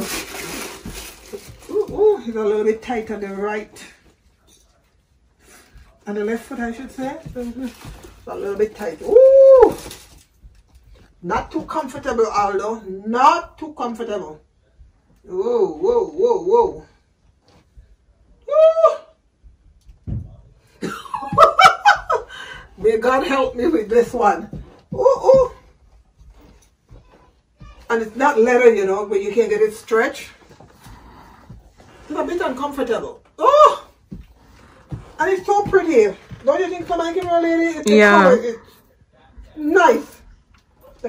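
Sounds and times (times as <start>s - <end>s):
paper rustling: 0.0s - 2.3s
woman's rising ooh: 9.1s - 9.8s.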